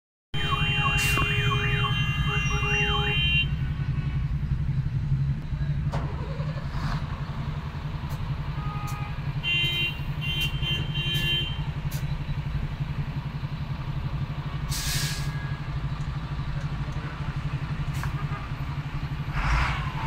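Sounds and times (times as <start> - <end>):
car horn beeps: 0.4 - 3.6, 8.5 - 11.7
idling and creeping engines: 0.4 - 20.0.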